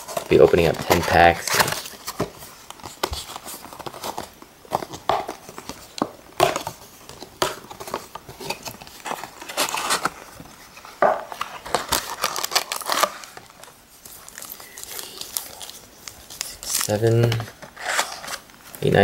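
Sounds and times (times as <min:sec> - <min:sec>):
foil packs crinkling and rustling: 0:00.0 - 0:19.0
sharp foil crackles: 0:14.2 - 0:17.2.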